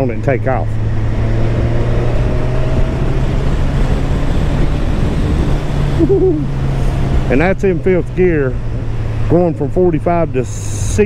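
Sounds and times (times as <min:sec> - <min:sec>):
motorcycle engine accelerating: 0:00.0 - 0:11.0
wind rush over microphone: 0:00.8 - 0:09.2.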